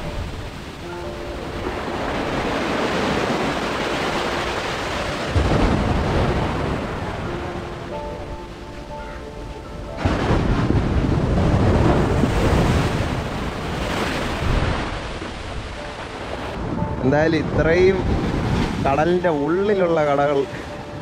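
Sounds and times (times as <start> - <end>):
wind rumbling on microphone: 0.0 - 8.2, 9.9 - 19.3
sea waves washing over sand: 0.0 - 21.0.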